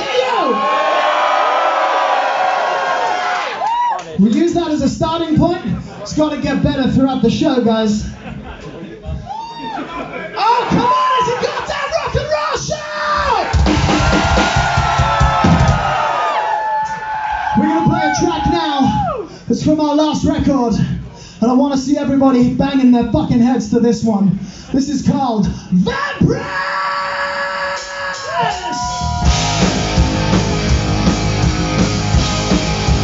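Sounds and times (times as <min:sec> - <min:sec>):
crowd noise: 0:00.0 - 0:19.1, 0:27.8 - 0:33.0
rock band holding a note: 0:13.1 - 0:16.3, 0:27.4 - 0:33.0
drum hits: 0:13.4 - 0:16.1, 0:29.2 - 0:33.0.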